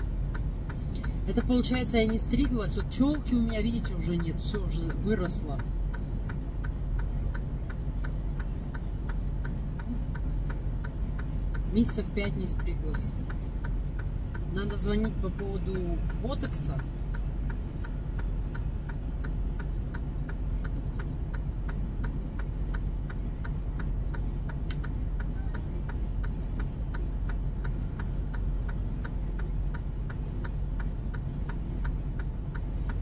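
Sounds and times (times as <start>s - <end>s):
low steady hum: 0.0s - 33.0s
steady mechanical ticking: 0.0s - 33.0s.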